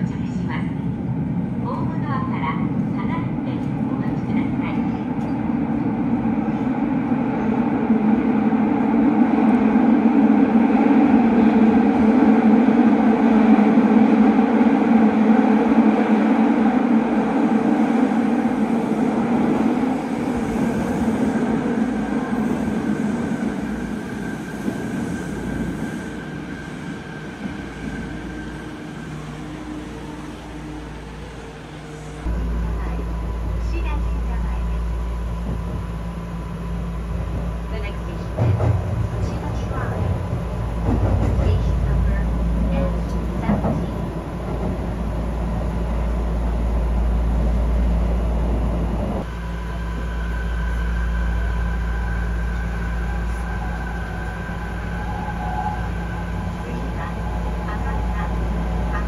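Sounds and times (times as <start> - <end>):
low rumble inside train car: 0.0 - 59.0
subway train arriving at station: 0.0 - 59.0.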